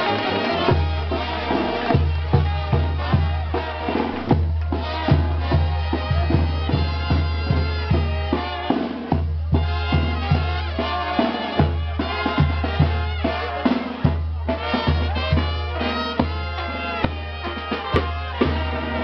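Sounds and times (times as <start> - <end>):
drums beating: 0.0 - 19.0
festival music: 0.0 - 19.0.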